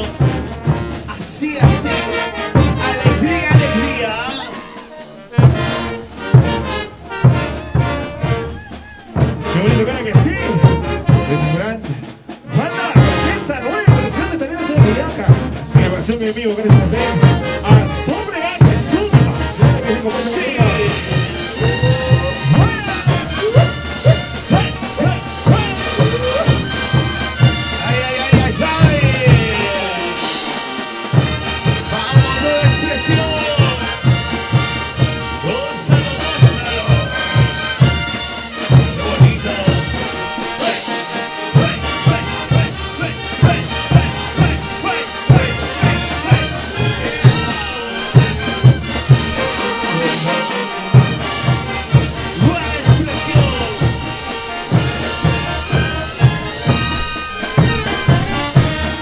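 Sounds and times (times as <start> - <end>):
bass drum and cymbal beat: 0.0 - 4.4, 5.2 - 59.0
brass band playing: 0.0 - 59.0.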